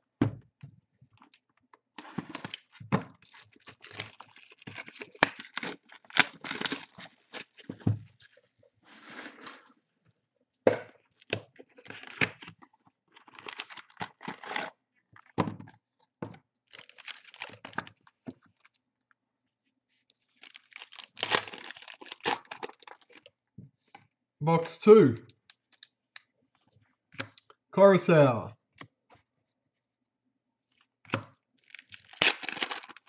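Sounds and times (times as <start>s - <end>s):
wrapping tearing and crinkling: 2.0s - 7.8s, 11.1s - 14.8s, 16.7s - 18.8s, 20.2s - 23.3s, 31.6s - 33.0s.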